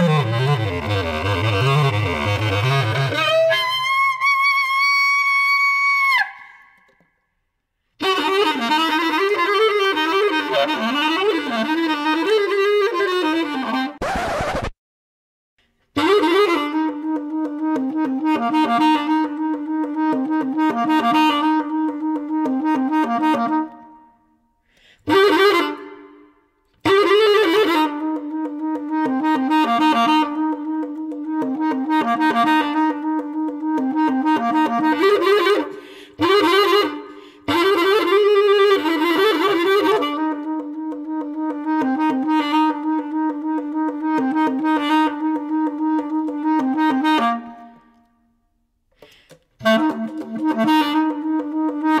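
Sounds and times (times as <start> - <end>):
bass clarinet music: 0.0 - 6.6, 8.0 - 14.7, 16.0 - 24.3, 25.1 - 48.1, 49.6 - 52.0.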